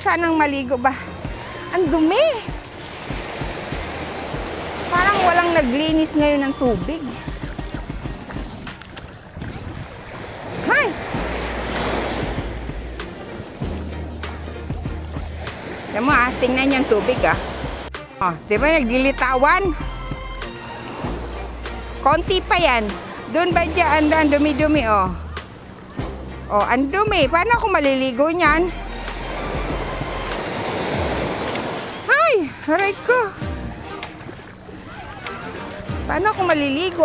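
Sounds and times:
wind buffeting microphone: 0.0 - 17.9
small waves on sandy shore: 0.0 - 37.0.

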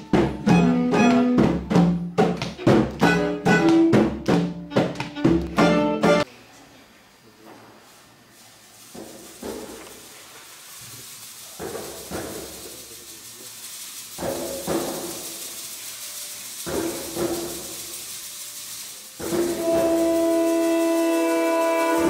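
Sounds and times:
percussion strokes: 0.0 - 6.3, 8.4 - 22.0
faint held instrument notes: 19.3 - 22.0.

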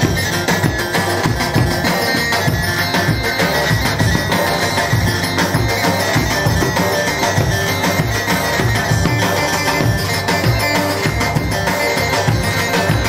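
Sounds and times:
steady drum beat: 0.0 - 13.0.

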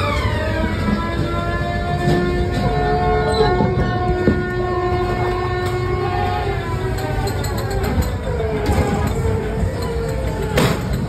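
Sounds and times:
loud sustained droning tones: 0.0 - 11.0
ride car rumbling along track: 0.0 - 11.0.

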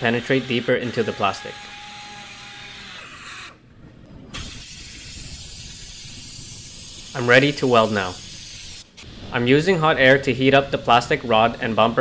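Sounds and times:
hot air welder blowing air: 4.3 - 9.3.

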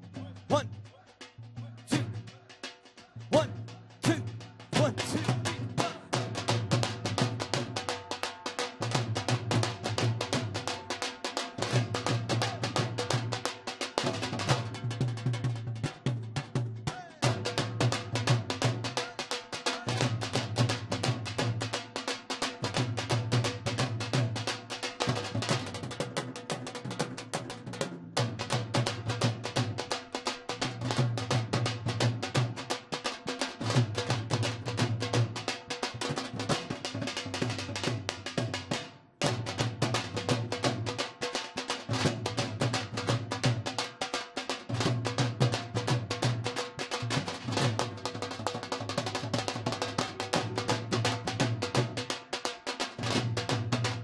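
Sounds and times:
drums played fast with sticks: 0.0 - 54.0.

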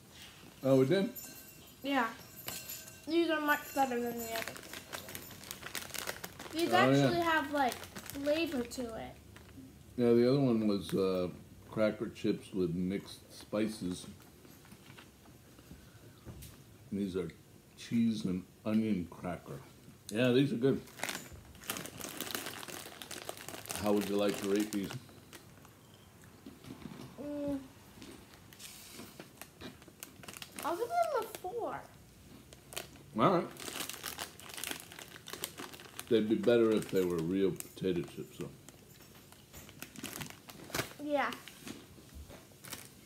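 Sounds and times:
chip bag rustling and crackling: 3.8 - 9.5, 20.8 - 25.7, 28.1 - 31.7, 32.5 - 41.9, 42.5 - 43.0.

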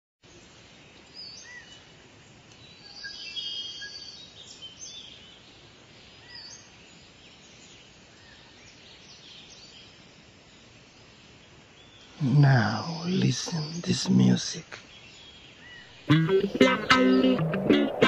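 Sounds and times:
small birds chirping: 0.2 - 18.0
low steady background: 5.4 - 18.0.

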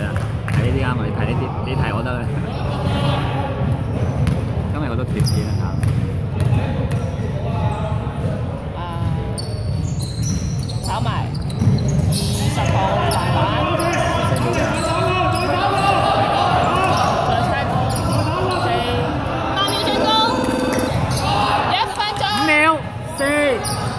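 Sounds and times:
players calling out in echoing hall: 0.0 - 23.9.

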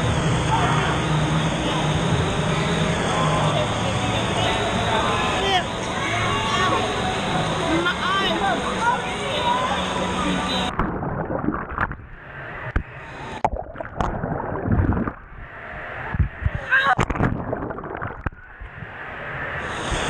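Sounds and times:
voices: 0.4 - 10.7
water sloshing and splashing: 10.7 - 18.8.

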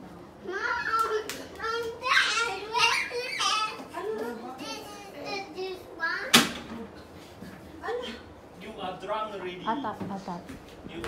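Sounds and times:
children laughing and calling out: 0.4 - 6.3.

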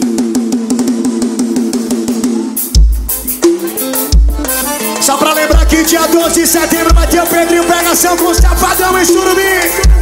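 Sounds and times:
fast repeating pitched riff: 2.2 - 10.0.

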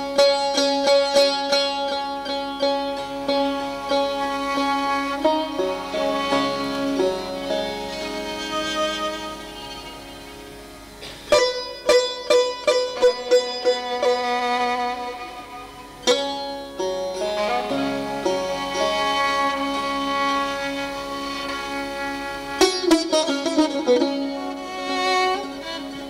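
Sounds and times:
held bowed-string tones: 0.0 - 26.0
plucked lute notes: 0.0 - 26.0.

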